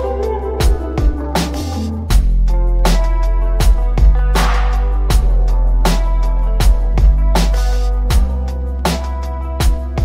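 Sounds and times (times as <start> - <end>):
lo-fi hip hop instrumental: 0.0 - 10.0.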